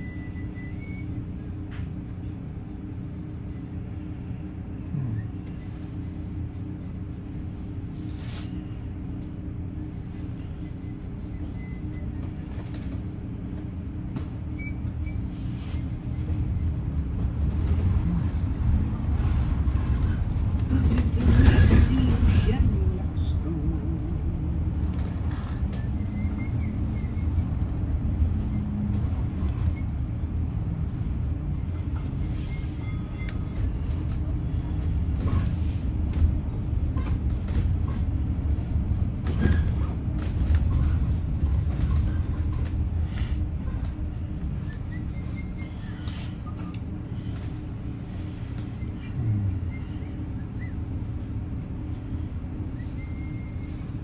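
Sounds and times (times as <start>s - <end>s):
bus cabin rumble and hum: 0.0s - 54.0s.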